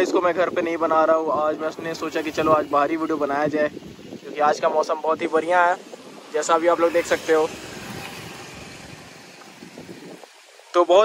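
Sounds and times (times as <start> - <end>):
small motorcycle passing: 5.5 - 10.6.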